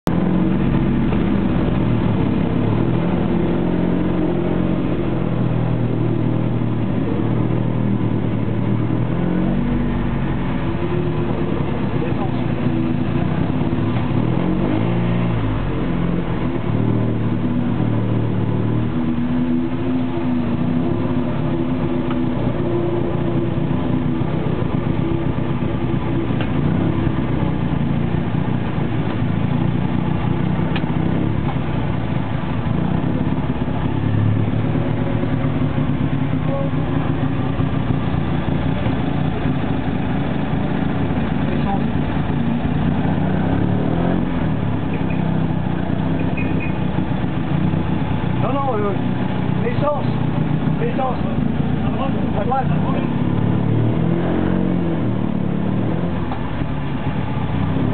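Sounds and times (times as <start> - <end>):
racing car engine at low speed: 0.0 - 57.9.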